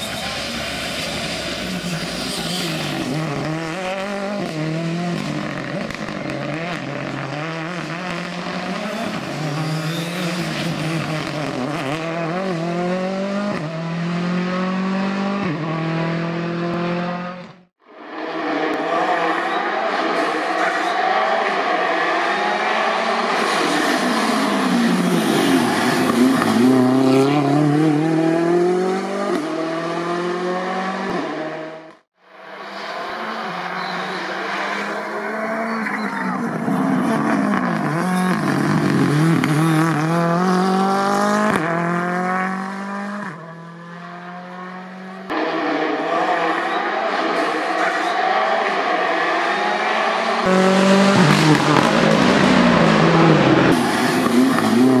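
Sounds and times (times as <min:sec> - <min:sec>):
rally car engine at full throttle: 0:00.0 - 0:55.0.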